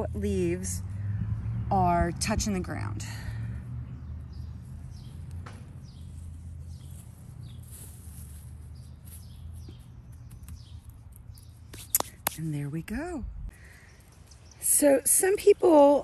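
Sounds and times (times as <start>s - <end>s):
hands packing damp soil: 5.2s - 10.9s.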